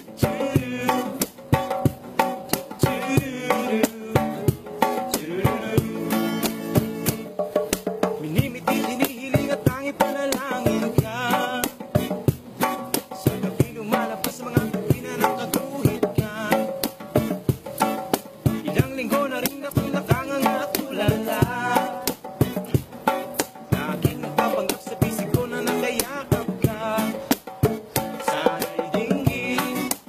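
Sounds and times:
person singing: 0.0 - 1.7, 2.5 - 7.3, 23.7 - 27.3, 28.0 - 30.0
acoustic guitar strumming: 0.0 - 30.0
hand drums beat: 0.0 - 30.0.

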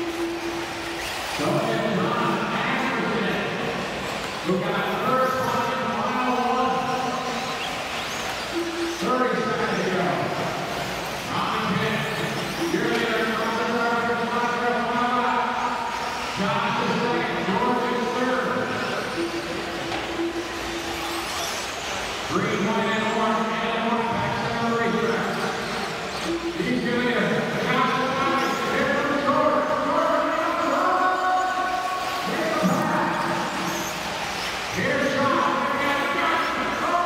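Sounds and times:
arena background noise: 0.0 - 37.0.

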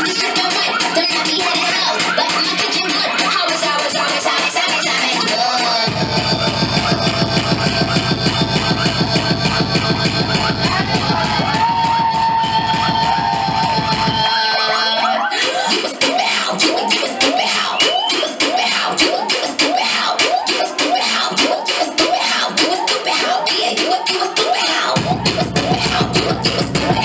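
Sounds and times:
electronic dance music: 0.0 - 27.0.

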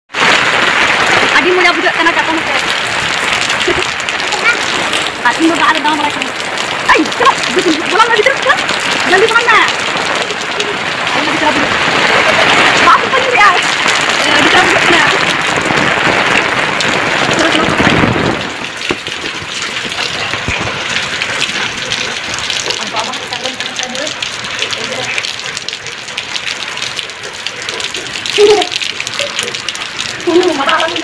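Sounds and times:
heavy rain pouring: 0.1 - 31.0.

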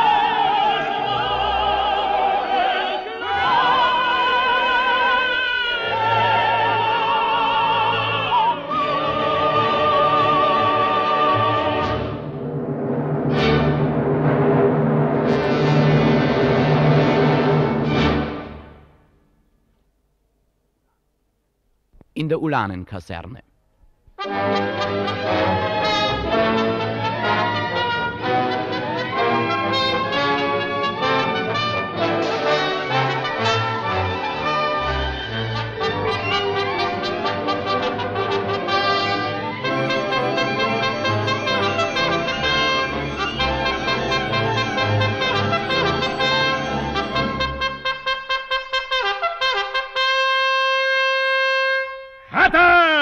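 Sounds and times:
brass-led orchestra: 0.0 - 19.0, 24.2 - 52.3.

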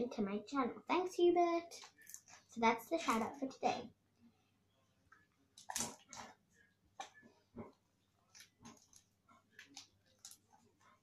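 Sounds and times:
slime squelching and popping: 5.1 - 11.0.

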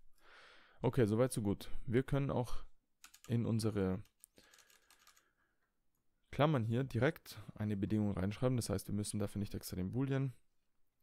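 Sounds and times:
computer keyboard keystrokes: 3.0 - 3.3, 4.0 - 5.2.

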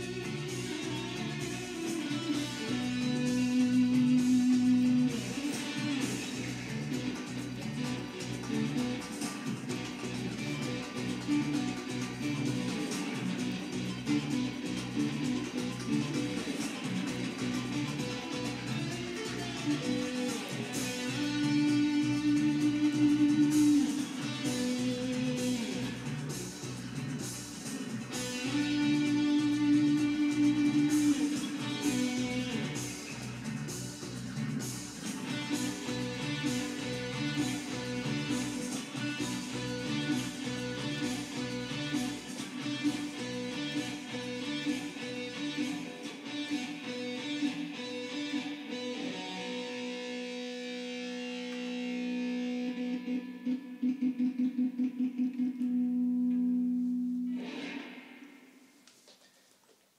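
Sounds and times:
drum and percussion beat: 0.0 - 46.2
bass: 0.0 - 52.8
electric guitar lead line: 0.0 - 58.8.

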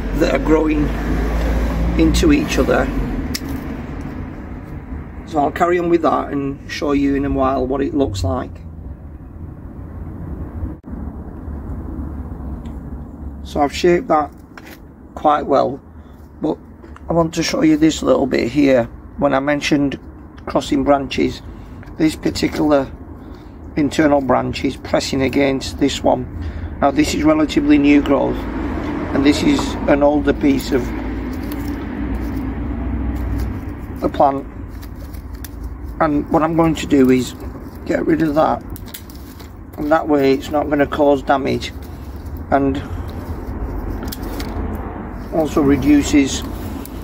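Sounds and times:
low outdoor rumble: 0.0 - 47.0.

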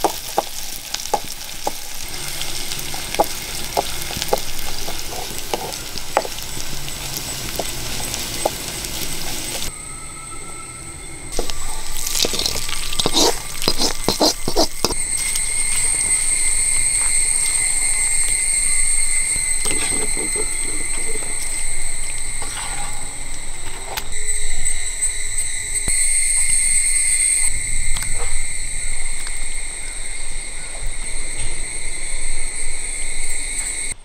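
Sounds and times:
insects trilling: 0.0 - 34.0.

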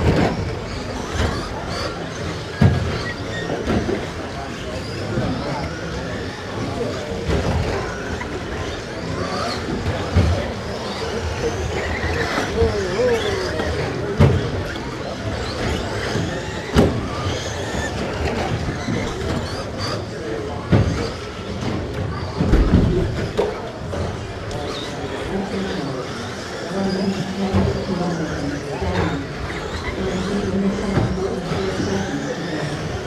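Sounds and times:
toy truck motors and tyres rumbling: 0.0 - 33.0.

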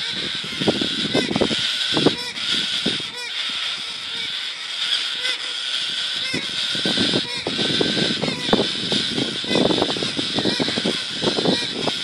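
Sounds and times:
cockatoos squawking: 0.0 - 12.0.

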